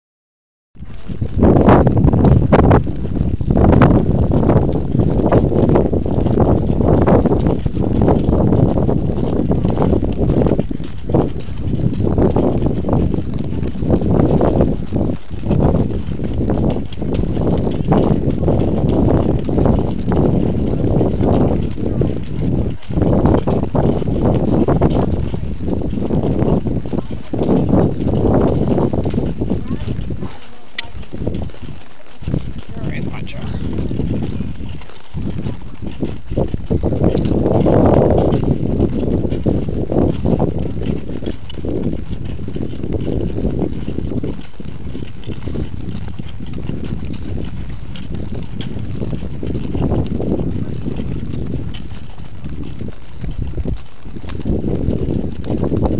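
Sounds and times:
hooves clip-clopping on gravel: 0.8s - 55.9s
low microphone noise: 32.6s - 34.6s.

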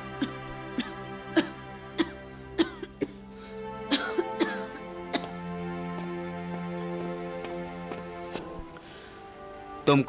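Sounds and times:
background music: 0.0s - 10.0s
person coughing: 0.2s - 3.2s, 3.9s - 5.3s.

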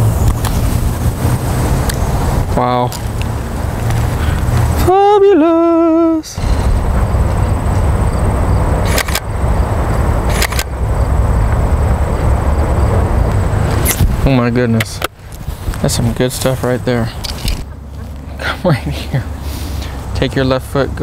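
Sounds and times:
wind buffeting microphone: 0.0s - 5.2s, 5.8s - 18.0s
person saying ooh: 4.8s - 6.4s
short clicks: 8.8s - 9.3s, 10.3s - 10.7s.

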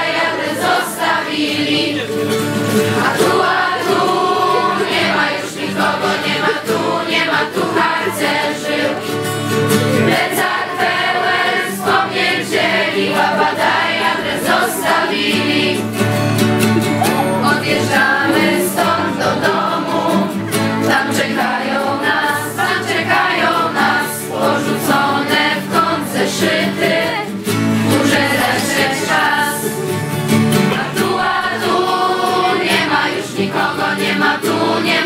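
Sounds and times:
acoustic guitar: 0.0s - 35.0s
young voices singing together: 0.0s - 35.0s.

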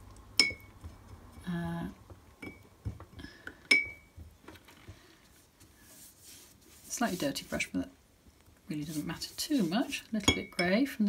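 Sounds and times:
faint brush sounds: 4.6s - 10.6s
brush clinking against glass jar: 9.6s - 10.8s.

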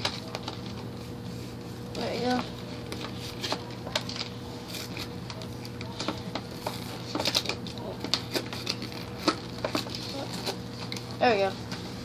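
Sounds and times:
plastic packaging crackling: 0.0s - 11.8s
steady low hum: 0.0s - 12.0s.

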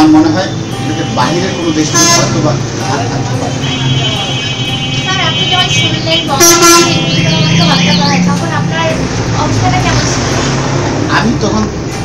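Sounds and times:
held horn-like tones: 0.0s - 8.7s
vehicle horn honk: 0.3s - 2.6s, 3.4s - 8.3s
voice: 5.1s - 10.4s.

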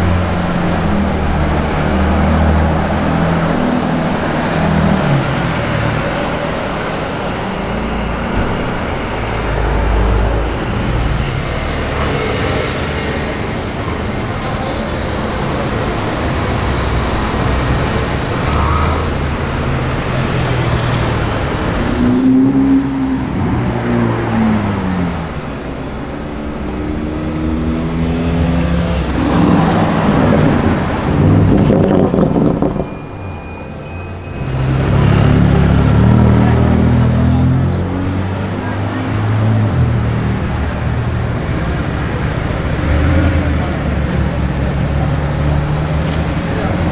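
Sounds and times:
cars driving past: 0.0s - 46.9s
engine revving through gear changes: 34.5s - 46.9s.

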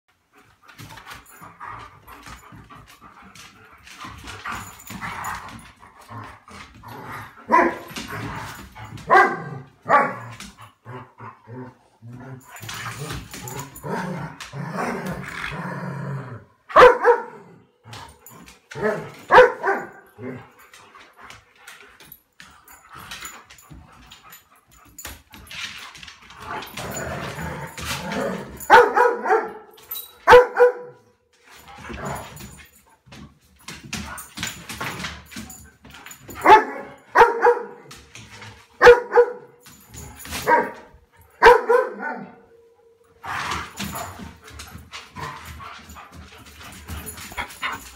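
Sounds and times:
dogs growling: 9.5s - 16.7s, 26.3s - 28.7s
dogs barking: 16.7s - 17.4s, 18.8s - 20.1s, 28.6s - 29.6s, 30.3s - 31.0s, 36.4s - 37.8s, 38.8s - 39.5s, 41.4s - 42.3s.

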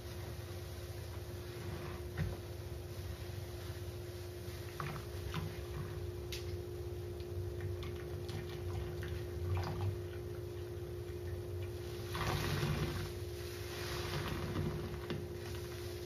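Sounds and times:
soapy sponge squelching: 11.6s - 16.0s.

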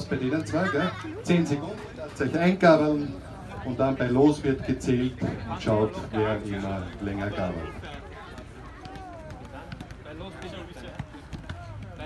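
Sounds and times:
footballs tapping against shoes: 6.8s - 12.0s.

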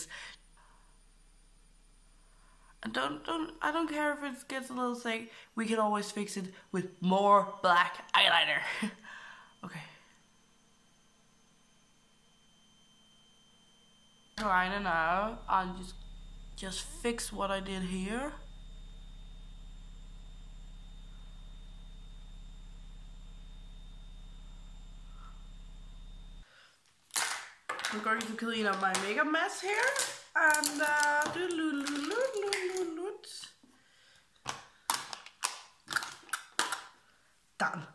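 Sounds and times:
washing machine humming: 0.0s - 26.5s
faint high whine: 0.0s - 26.9s
makeup items clicking together: 27.2s - 29.2s, 34.4s - 36.9s.

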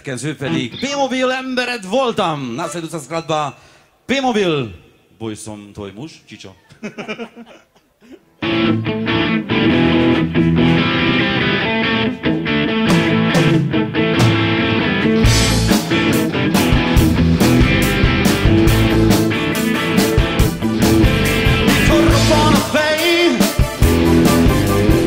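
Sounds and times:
electric guitars: 8.4s - 25.0s
rock band playing: 8.4s - 25.0s
drums: 9.6s - 11.4s, 12.0s - 25.0s.

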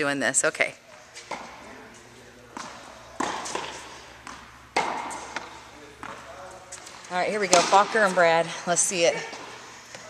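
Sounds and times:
tennis racket hitting foam ball: 2.5s - 6.2s, 7.4s - 8.1s.

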